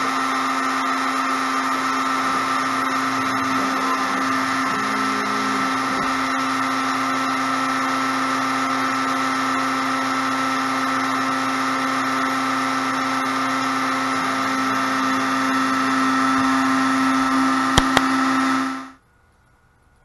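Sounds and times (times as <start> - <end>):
router motor whine with hiss: 0.0 - 19.0.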